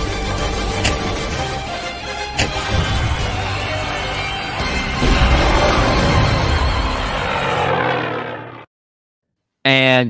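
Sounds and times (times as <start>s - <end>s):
dense rushing soundtrack: 2.6s - 8.3s.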